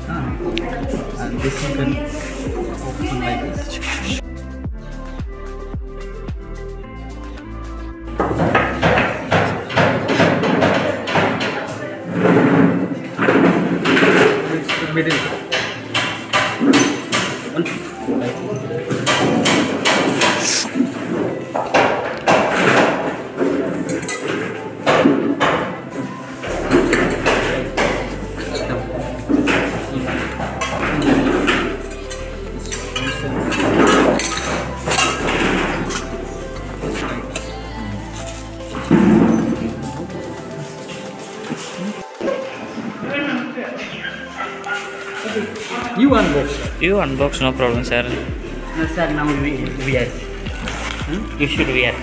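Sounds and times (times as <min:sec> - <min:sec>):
indistinct voices talking: 0:00.0 - 0:05.1, 0:26.5 - 0:52.0
background music: 0:00.0 - 0:52.0
indistinct chatter: 0:08.7 - 0:46.8.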